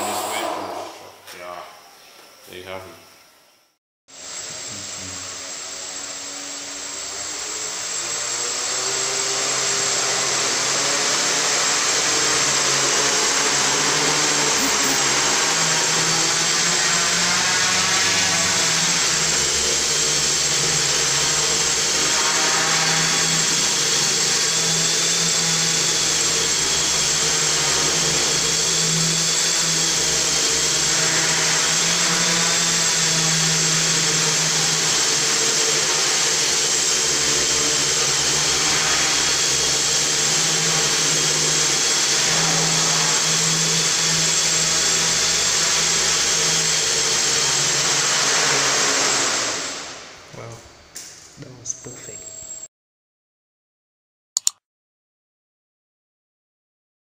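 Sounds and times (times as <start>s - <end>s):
drone motors whining: 0.0s - 2.4s, 4.2s - 50.1s, 51.4s - 52.7s.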